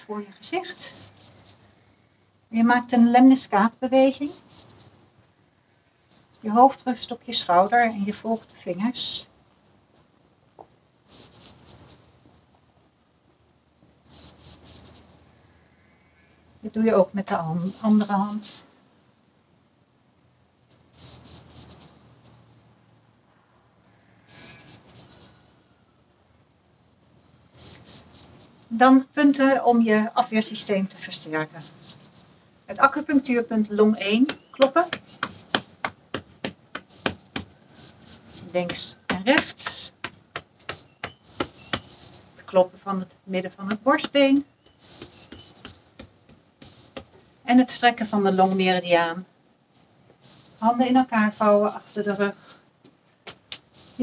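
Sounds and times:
small songbird singing: 0:00.0 - 0:09.3, 0:11.0 - 0:12.6, 0:14.0 - 0:19.3, 0:20.9 - 0:22.8, 0:23.9 - 0:25.9, 0:26.9 - 0:52.7, 0:53.4 - 0:54.0
high-pitched bird chirps: 0:30.8 - 0:36.1, 0:40.6 - 0:49.2
fingertips tapping on chest: 0:34.1 - 0:42.1, 0:43.7 - 0:47.3.

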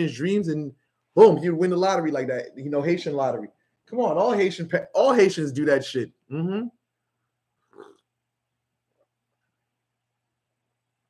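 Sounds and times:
slurp of hot tea: 0:07.8 - 0:08.0.

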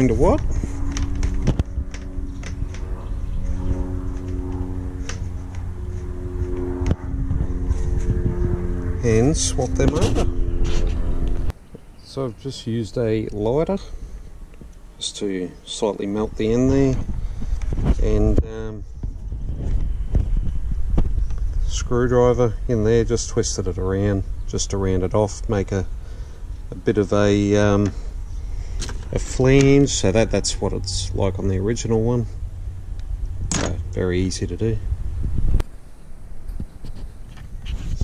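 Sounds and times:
wind rumble on microphone: 0:00.0 - 0:11.6, 0:15.7 - 0:38.0
distant engine droning hum: 0:00.0 - 0:38.0.

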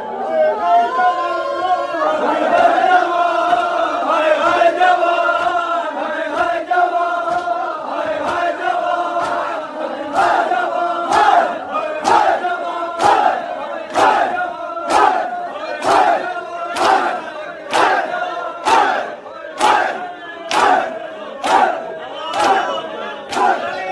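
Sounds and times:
men chanting: 0:00.0 - 0:23.9.

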